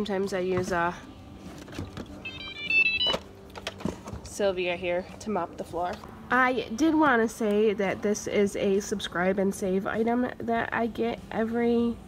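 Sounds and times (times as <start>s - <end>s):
electronic jingle of high beeps: 2.2s - 3.2s.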